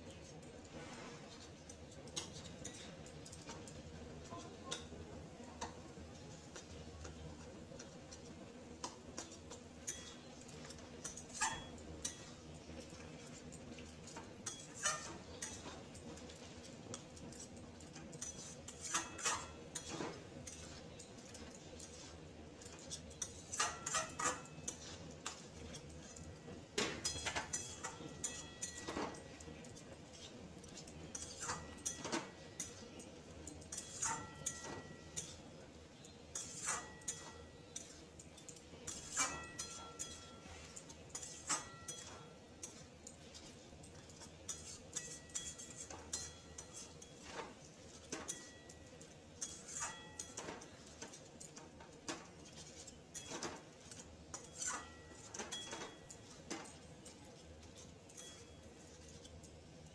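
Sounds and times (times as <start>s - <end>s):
spatula scraping metal pan: 18.1s - 29.3s, 30.1s - 32.8s, 36.4s - 38.1s, 38.8s - 43.7s, 44.3s - 48.6s, 49.4s - 51.2s, 52.4s - 56.8s.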